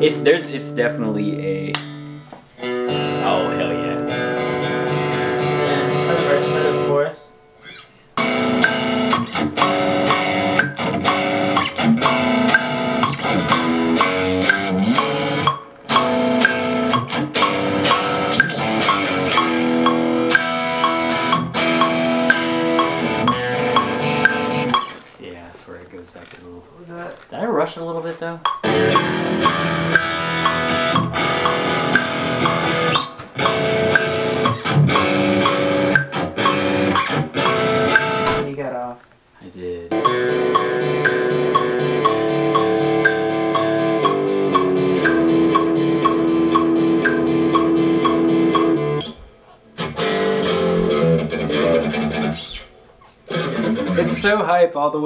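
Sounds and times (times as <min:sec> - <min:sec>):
electric guitar riff: 0:01.5 - 0:25.0, 0:28.6 - 0:38.5, 0:39.9 - 0:54.4
metronome click: 0:07.7 - 0:25.0, 0:28.4 - 0:38.4, 0:39.9 - 0:49.2.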